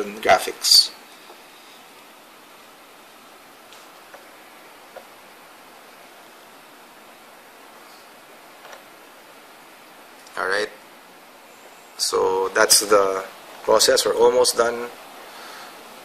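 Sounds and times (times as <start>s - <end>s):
faint room tone hiss: 0.0s - 16.0s.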